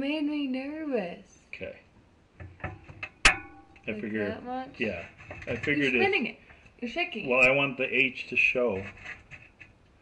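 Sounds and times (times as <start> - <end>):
glass tapping on wire shelf: 2.4 - 4.0
glass clinking: 3.1 - 4.3.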